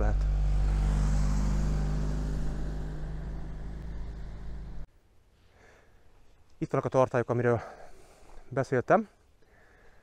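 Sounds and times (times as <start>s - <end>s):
van driving past: 0.0s - 4.9s.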